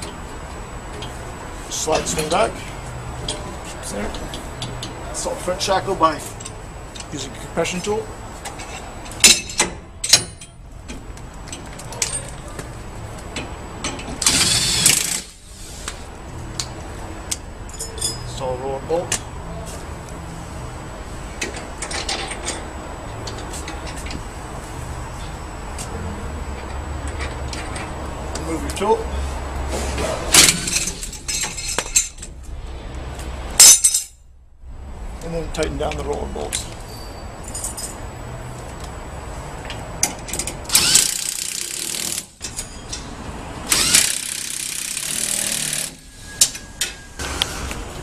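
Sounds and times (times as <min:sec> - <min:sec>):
metal clanks and knocks: 0:08.4 - 0:12.5, 0:21.4 - 0:24.2, 0:29.7 - 0:32.5
metal tools clanking: 0:17.7 - 0:18.5, 0:29.7 - 0:32.4, 0:33.6 - 0:34.2, 0:35.9 - 0:38.0
loud sharp metal clanks: 0:33.5 - 0:34.2.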